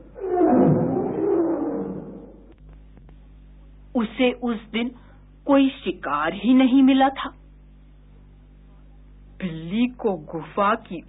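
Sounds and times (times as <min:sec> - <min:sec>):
lion roaring: 0:00.0 - 0:02.5.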